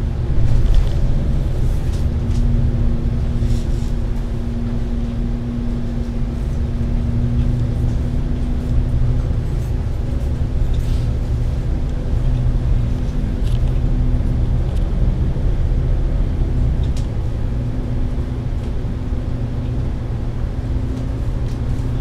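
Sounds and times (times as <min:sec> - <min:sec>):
bus interior drone: 0:00.0 - 0:22.0.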